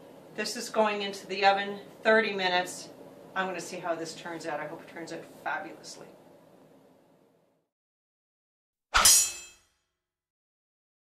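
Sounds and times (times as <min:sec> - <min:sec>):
metallic clang: 0:09.0 - 0:09.7.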